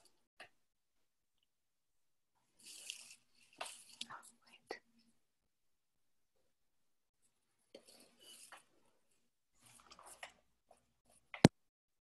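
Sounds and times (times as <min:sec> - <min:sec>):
faint breathy whispering: 0:03.9 - 0:05.2.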